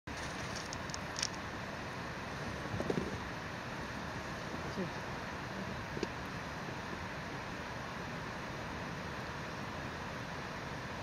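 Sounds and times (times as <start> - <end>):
rushing outdoor background noise: 0.1 - 11.0.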